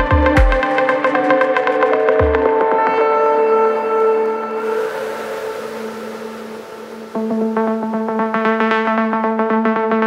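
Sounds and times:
synthesized noise wash: 3.9s - 9.2s.

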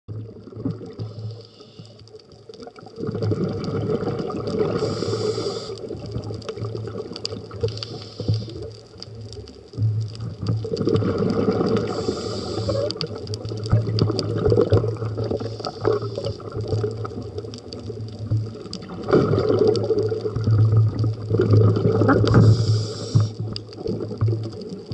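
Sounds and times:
diver breathing through regulator: 1.0s - 2.0s, 4.7s - 5.9s, 7.7s - 8.7s, 11.8s - 13.0s, 15.3s - 16.5s, 22.2s - 23.4s.

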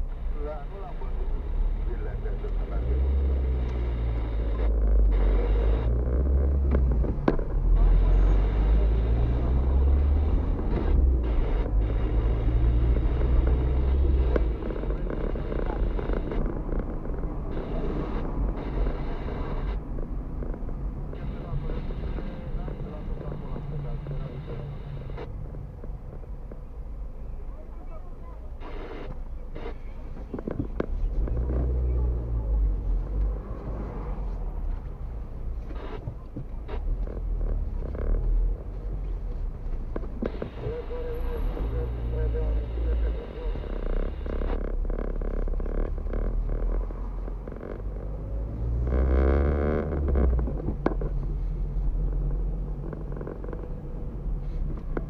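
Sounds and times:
car engine and road rumble: 0.0s - 55.0s.

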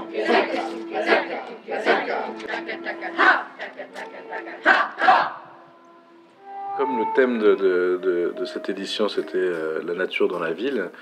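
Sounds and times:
group of voices calling out: 0.0s - 5.6s.

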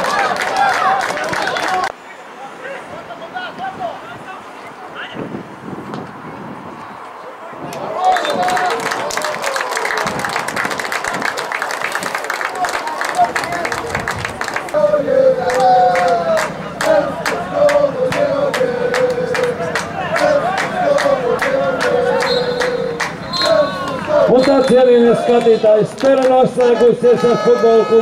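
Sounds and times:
crowd clapping and cheering: 0.0s - 2.0s, 7.7s - 28.0s
rhythmic clapping: 7.7s - 26.8s
supporters chanting in unison: 14.6s - 25.6s.

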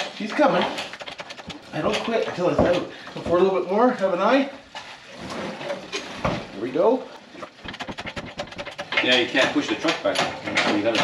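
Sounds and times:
lifting chains rattling: 8.3s - 11.0s.

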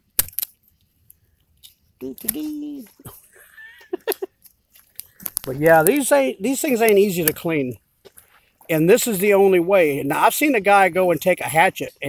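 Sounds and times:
blade crunching through scales: 0.0s - 0.7s.

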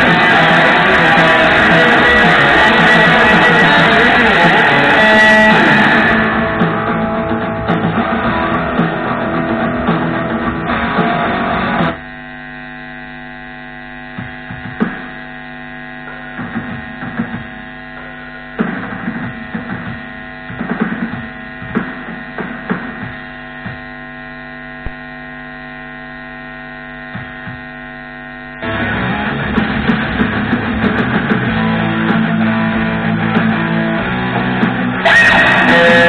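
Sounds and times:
guitar playing: 0.0s - 12.0s, 28.6s - 36.0s
electrical mains hum: 0.0s - 36.0s.

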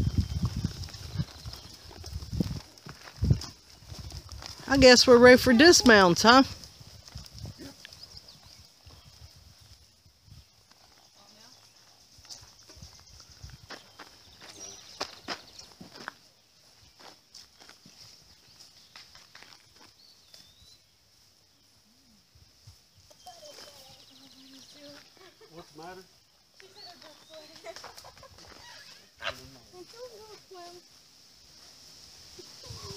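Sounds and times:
knocks and clicks of hooves and tack: 0.0s - 5.0s, 5.6s - 9.9s
horses stepping on grass: 0.0s - 32.9s.

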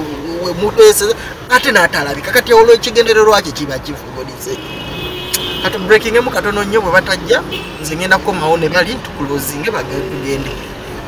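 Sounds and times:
man talking: 0.0s - 4.6s, 5.6s - 10.7s.

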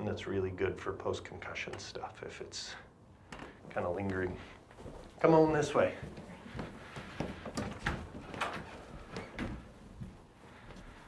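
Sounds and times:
footsteps on carpet: 4.2s - 11.0s.

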